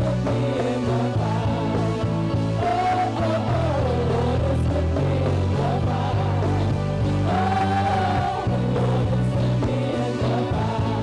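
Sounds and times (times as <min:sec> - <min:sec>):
live worship band: 0:00.0 - 0:11.0
women singing: 0:00.0 - 0:11.0.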